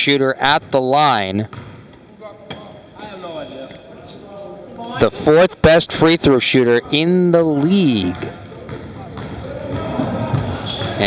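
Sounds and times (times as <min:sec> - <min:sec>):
basketball bouncing on hardwood floor: 0:01.5 - 0:01.8, 0:08.7 - 0:10.9.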